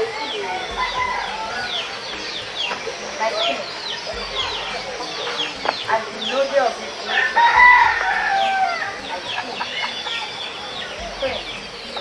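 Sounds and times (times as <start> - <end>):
rooster crowing: 0.0 - 2.2, 7.0 - 10.0
small birds chirping: 0.0 - 12.0.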